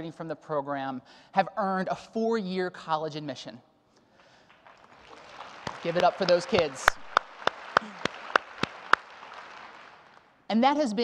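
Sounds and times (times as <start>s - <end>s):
audience applause: 4.5s - 10.2s
man clapping close to microphone: 4.5s - 10.3s.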